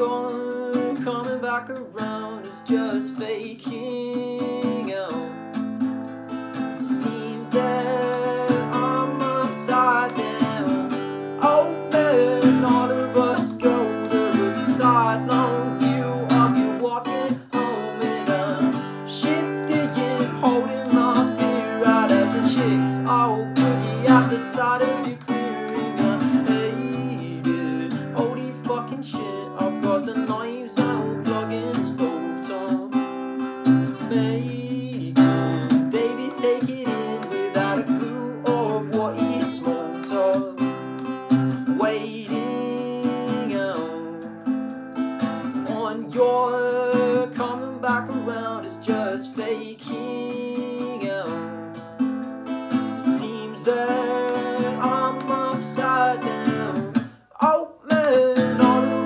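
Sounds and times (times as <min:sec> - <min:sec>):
acoustic guitar strumming: 0:00.0 - 0:59.0
man singing: 0:00.0 - 0:59.0.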